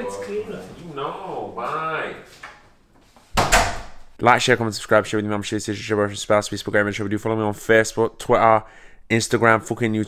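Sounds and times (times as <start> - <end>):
door shutting with deep thud: 3.3 - 4.1.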